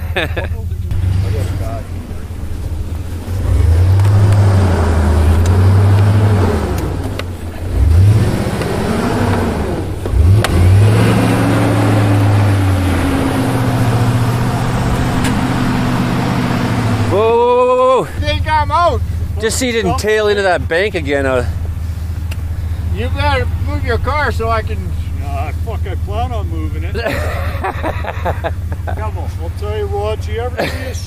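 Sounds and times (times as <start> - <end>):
truck engine revving: 0.0 - 31.0.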